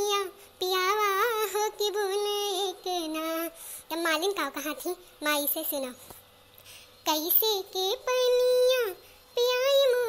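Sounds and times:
person singing unaccompanied: 0:00.0 - 0:06.0, 0:07.0 - 0:10.0.

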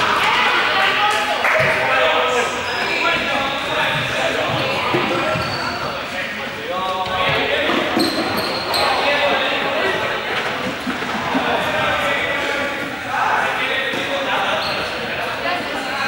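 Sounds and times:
students calling out and chattering: 0:00.0 - 0:16.0.

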